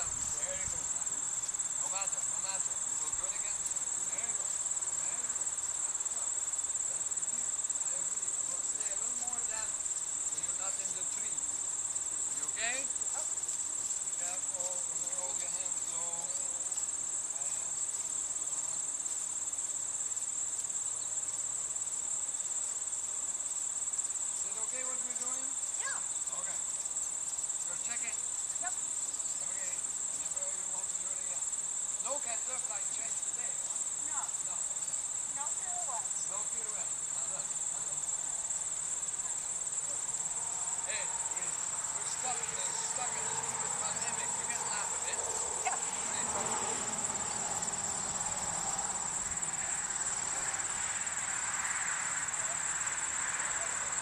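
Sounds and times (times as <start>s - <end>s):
crickets chirping: 0.0s - 54.0s.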